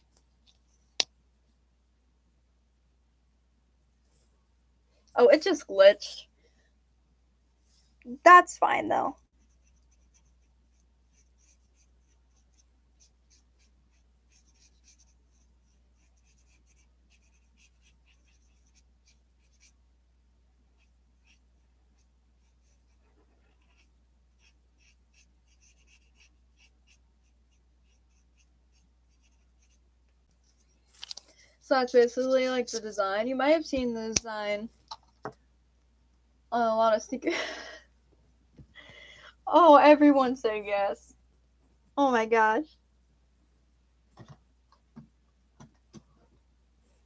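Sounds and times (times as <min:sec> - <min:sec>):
marker scratching on paper: 0:09.4 - 0:19.8, 0:20.8 - 0:29.8.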